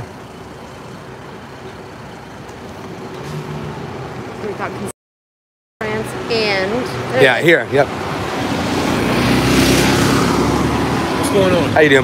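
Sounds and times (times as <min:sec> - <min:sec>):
road traffic rumble: 0:00.0 - 0:05.0, 0:05.8 - 0:12.0.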